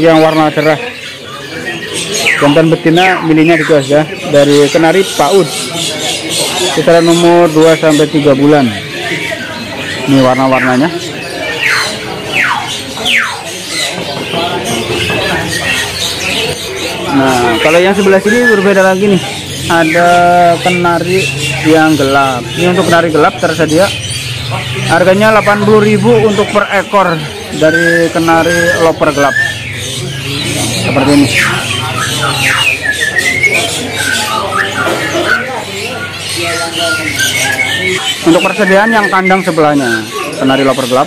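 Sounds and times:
background chatter: 0.0s - 41.0s
canaries chirping: 0.0s - 41.0s.

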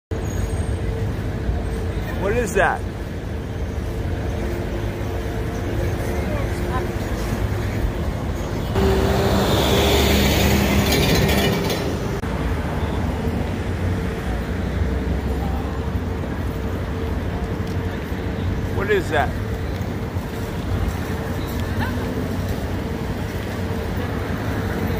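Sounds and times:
street traffic noise: 0.1s - 24.9s
vehicle passing: 4.3s - 17.0s.

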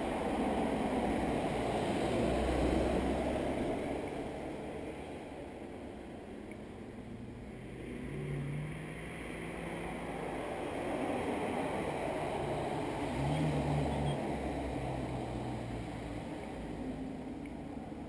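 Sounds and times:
car engine hum: 0.0s - 18.0s.

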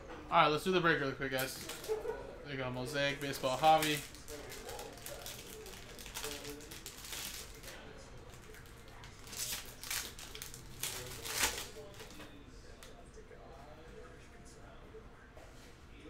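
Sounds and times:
foil wrapper crinkling and tearing: 1.4s - 1.9s, 3.1s - 12.2s.

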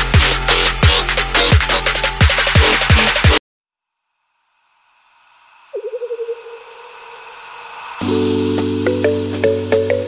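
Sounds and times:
electronic music beat: 0.0s - 3.4s, 8.0s - 10.0s
rising hiss: 4.8s - 10.0s
wobbling synth tone: 5.8s - 7.0s.

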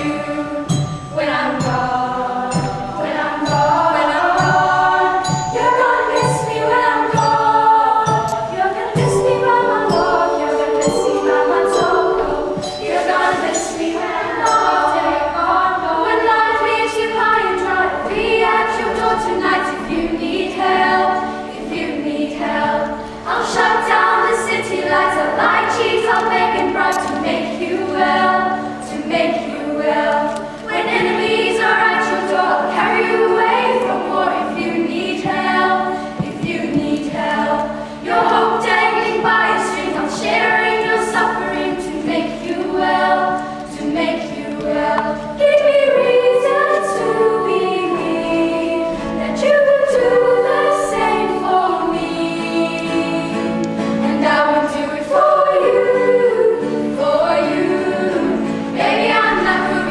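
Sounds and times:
children's choir singing: 0.0s - 59.9s.

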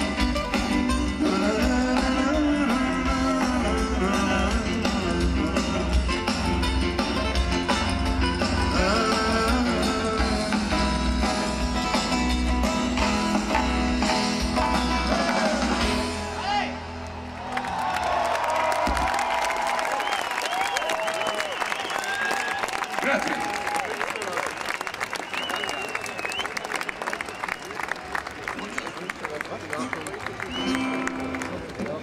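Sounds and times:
live band playing: 0.0s - 17.0s, 29.7s - 32.0s
crowd applauding and cheering: 13.4s - 32.0s.

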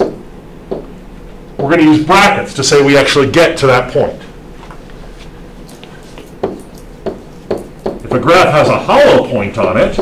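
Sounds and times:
stylus tapping on surface: 0.0s - 1.0s, 5.8s - 8.2s.

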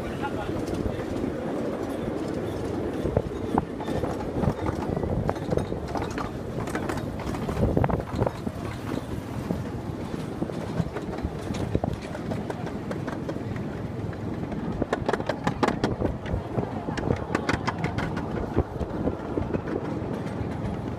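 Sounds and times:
miniature train rumbling: 0.0s - 20.9s
wheels clicking on rails: 0.0s - 20.9s.

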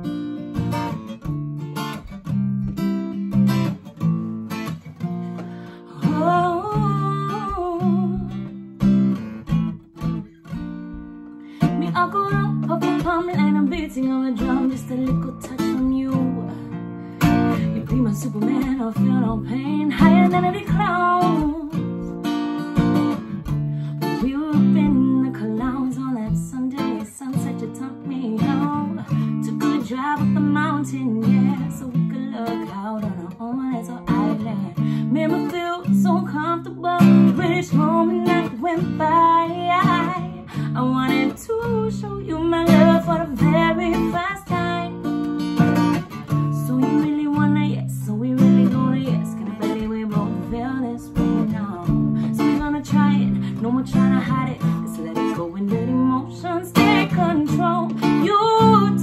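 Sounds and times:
acoustic guitar strumming: 0.0s - 59.0s
woman singing: 5.4s - 9.0s, 11.0s - 59.0s.

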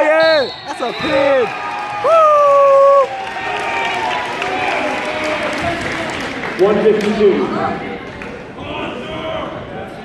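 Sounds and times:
crowd applause and cheering: 1.4s - 7.4s.

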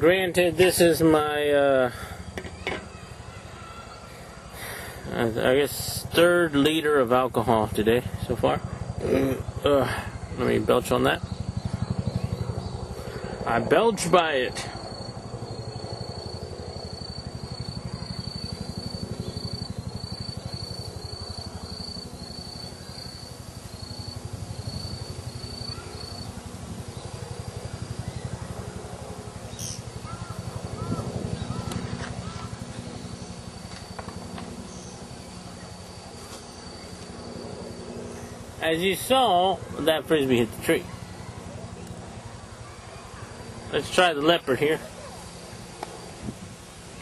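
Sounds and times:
low outdoor rumble: 0.0s - 47.0s
faint bird chirps: 1.9s - 5.2s, 14.8s - 28.5s, 29.5s - 38.4s.

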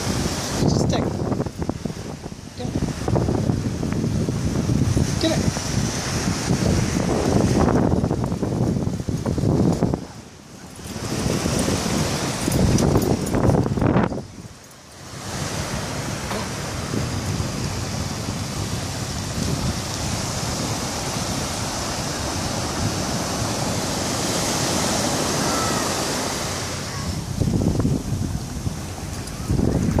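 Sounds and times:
ocean surf hiss: 0.0s - 30.0s
wind gusting on microphone: 0.0s - 30.0s.

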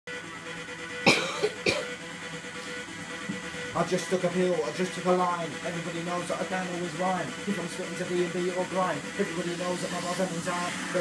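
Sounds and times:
young man coughing: 1.0s - 2.0s.

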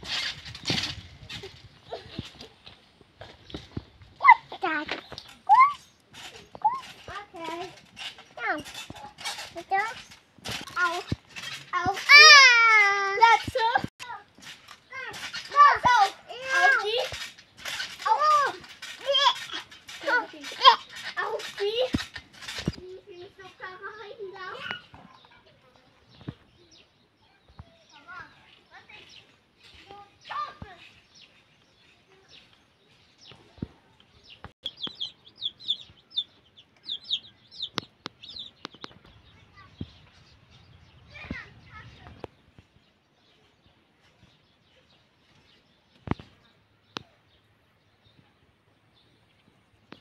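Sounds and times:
chicks peeping: 34.4s - 40.0s.

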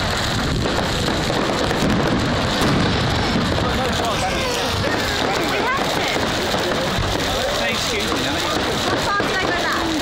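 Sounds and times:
bonfire and fireworks crackling: 0.0s - 10.0s.

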